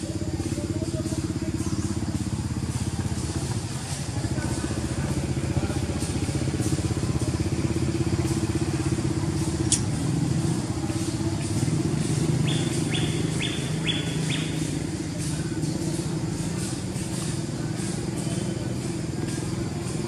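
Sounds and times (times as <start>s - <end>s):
small engine running: 0.0s - 20.0s
sharp click: 9.6s - 9.9s.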